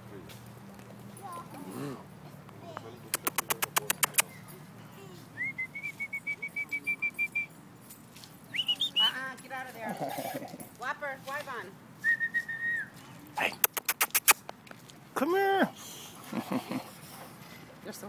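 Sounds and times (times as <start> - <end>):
rapid sharp clicks: 3.2 - 4.3.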